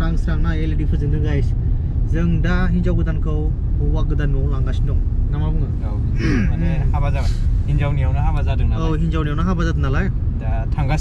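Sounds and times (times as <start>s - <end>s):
low vehicle rumble: 0.0s - 11.0s
people talking: 2.1s - 11.0s.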